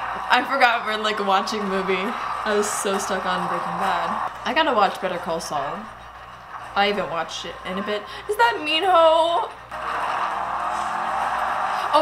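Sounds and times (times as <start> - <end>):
vehicles driving fast: 0.0 - 5.7, 9.7 - 12.0.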